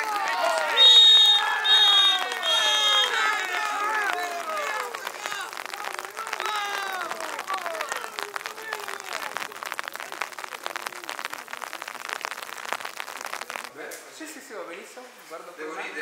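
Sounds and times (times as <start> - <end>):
players calling out: 0.0 - 11.4.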